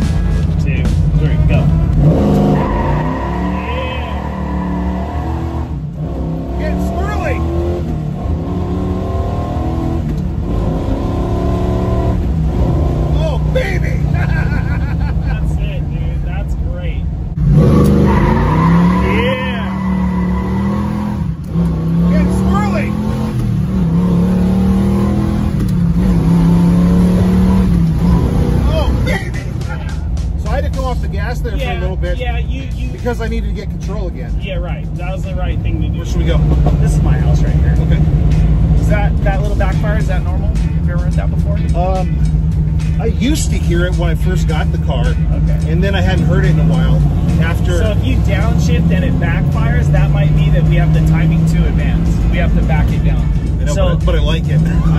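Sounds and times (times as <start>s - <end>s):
car engine pulling hard: 0.0s - 54.9s
tyres squealing: 2.1s - 5.6s, 17.6s - 21.3s.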